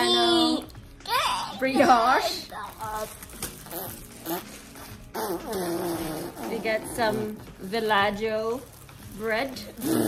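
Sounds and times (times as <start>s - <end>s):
plastic bag rustling: 1.8s - 10.0s.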